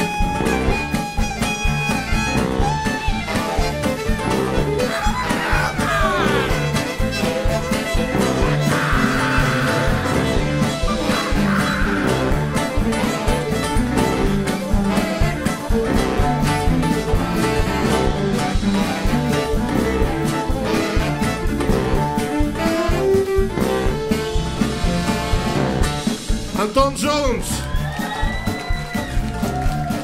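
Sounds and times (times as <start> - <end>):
blues band playing: 0.0 - 30.0.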